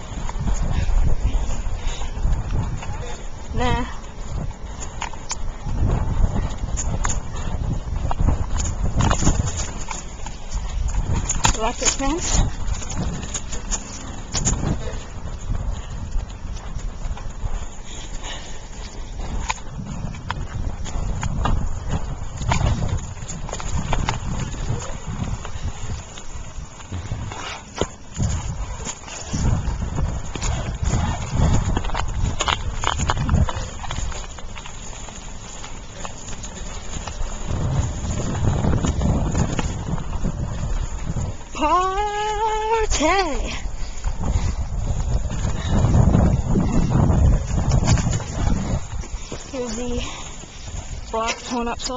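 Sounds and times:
bicycle rattling and knocking: 0.0s - 51.9s
wind buffeting microphone: 0.0s - 51.9s
person calling out: 41.6s - 43.5s.

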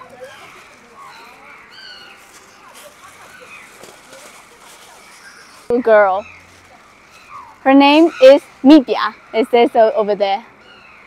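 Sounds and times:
distant voices chattering: 0.0s - 11.0s.

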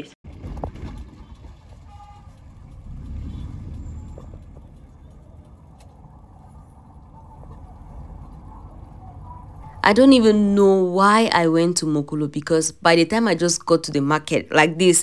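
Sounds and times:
car engine and road rumble: 0.2s - 11.4s
faint car horn toot: 1.8s - 2.4s.

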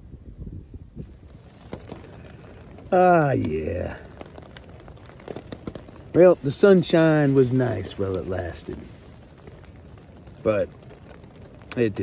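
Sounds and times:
light rain pattering on a tent: 0.8s - 12.0s.

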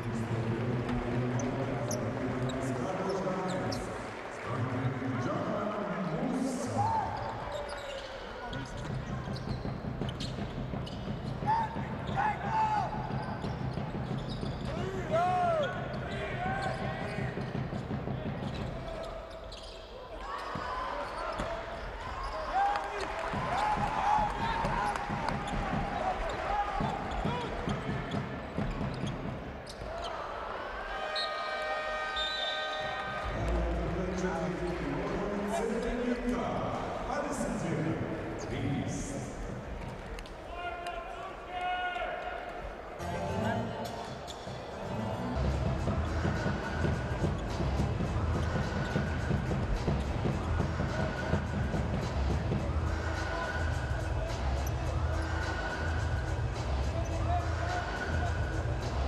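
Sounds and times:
voices in hall: 0.0s - 59.0s
sneakers squeaking on hardwood: 7.2s - 15.0s, 15.6s - 22.5s, 23.4s - 30.2s.

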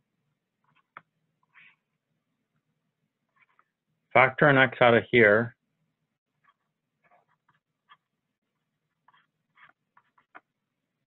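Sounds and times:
stylus scratching on touchscreen: 3.3s - 3.7s, 6.4s - 10.5s.

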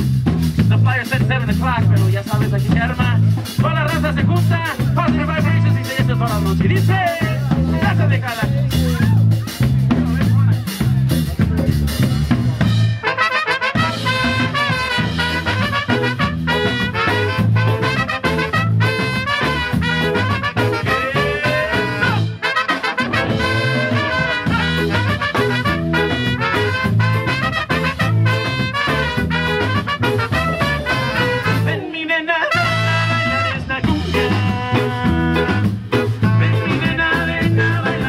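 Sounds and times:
live band playing: 0.0s - 38.0s
horn section playing melody: 12.8s - 31.9s, 32.5s - 36.8s.

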